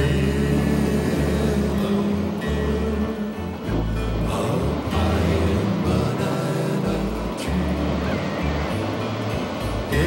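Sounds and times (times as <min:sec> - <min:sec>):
instrumental song with held bass: 0:00.0 - 0:10.0.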